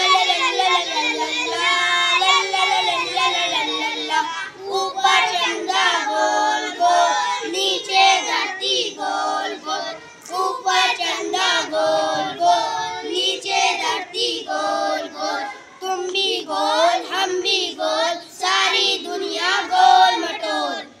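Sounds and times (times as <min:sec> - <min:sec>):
boys singing together: 0:00.0 - 0:21.0.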